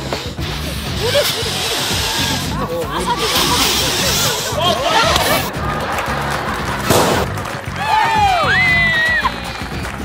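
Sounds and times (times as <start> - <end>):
music with steady beat: 0.0 - 10.0
people shouting and whooping: 1.0 - 6.8, 7.6 - 10.0
sharp crack: 6.8 - 7.5.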